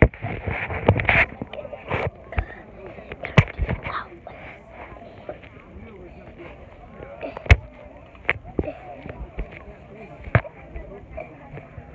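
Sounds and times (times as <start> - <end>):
faint children's voices: 0.0 - 11.9.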